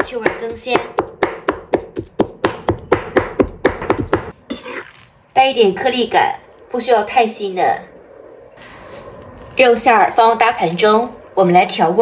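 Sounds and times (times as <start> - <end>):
cleaver chopping on wooden board: 0.0 - 4.3.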